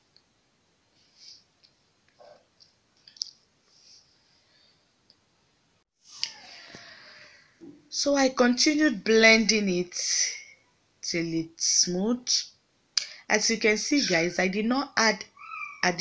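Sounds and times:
steady hiss: 0.0 - 1.9.

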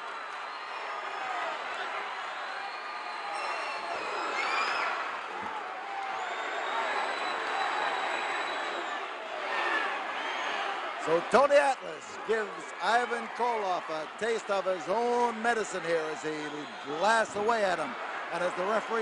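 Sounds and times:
crowd cheering and yelling: 0.0 - 19.0.

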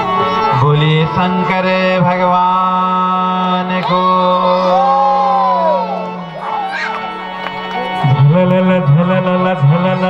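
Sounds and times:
person singing a long note: 4.0 - 6.4.

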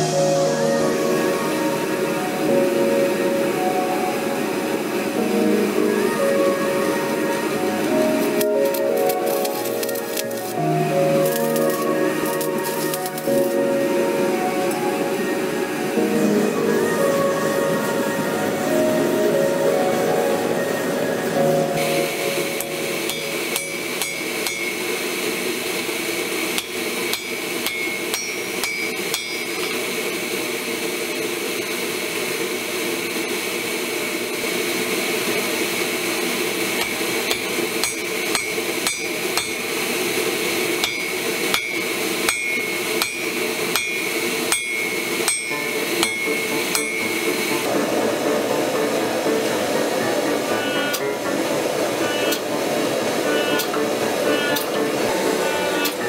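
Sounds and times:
hammer striking steel on anvil: 22.6 - 25.2, 26.5 - 30.0, 36.8 - 47.7.

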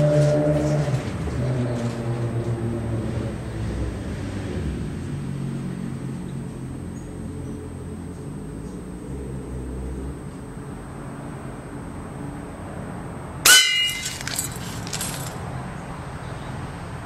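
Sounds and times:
pellet clanging on metal bowl: 13.5 - 15.2
metal bowl clattering: 13.5 - 15.3.

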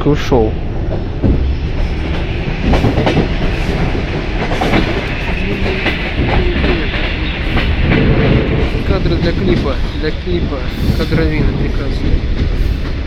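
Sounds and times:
train rumble: 0.0 - 13.0.

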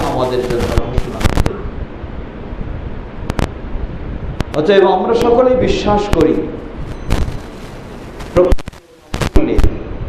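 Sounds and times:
sharp pops and clicks: 0.0 - 1.6, 3.2 - 3.6, 4.4 - 5.4, 6.8 - 9.7
man speaking: 0.0 - 1.7, 4.6 - 6.6, 8.3 - 9.9.

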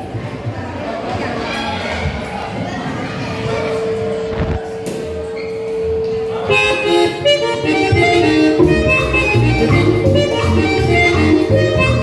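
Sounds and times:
button accordion: 6.4 - 12.0
bass guitar: 7.7 - 12.0.

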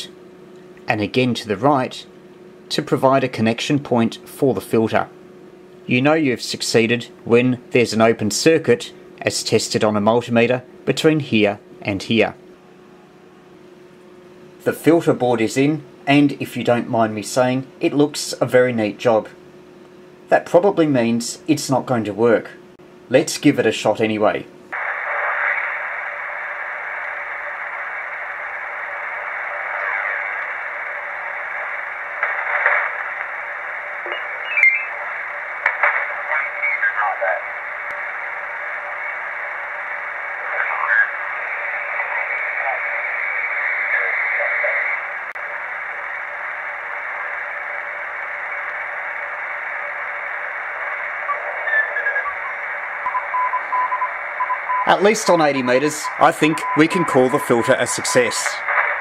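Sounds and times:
radio band noise hiss: 0.0 - 5.1, 5.7 - 12.4, 14.3 - 19.4, 20.1 - 59.0
radio whistles: 24.8 - 45.1, 47.2 - 59.0
garbled radio voices: 24.8 - 59.0.

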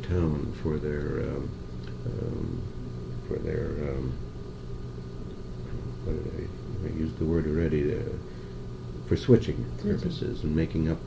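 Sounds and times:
tape recording hum and hiss: 0.0 - 11.0.

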